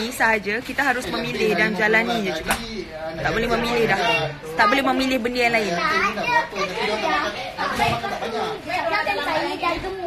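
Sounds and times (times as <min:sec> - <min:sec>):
children talking and playing: 0:00.0 - 0:10.0.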